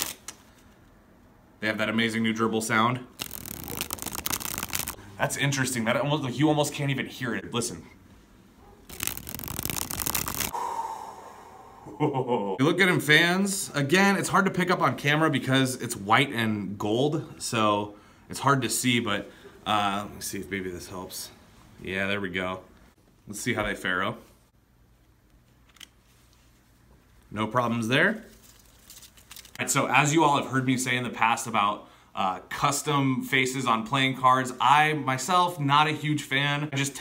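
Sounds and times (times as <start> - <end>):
playing cards flicking: 0.0 - 0.4, 3.2 - 5.0, 8.9 - 10.5.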